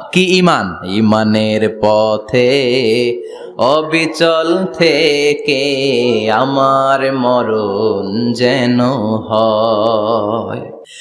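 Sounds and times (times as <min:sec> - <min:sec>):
man chanting melodically: 0:00.0 - 0:11.0
breaths: 0:03.2 - 0:03.6, 0:10.8 - 0:11.0.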